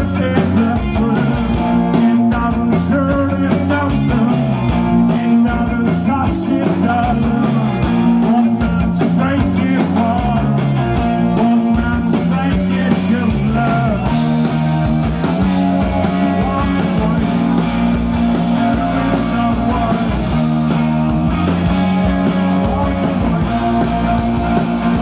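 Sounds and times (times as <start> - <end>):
man singing: 0.0 - 14.3, 15.7 - 20.9, 22.0 - 25.0
bass guitar: 0.0 - 25.0
drums with cymbal strokes: 0.0 - 25.0
electric guitar: 0.0 - 25.0.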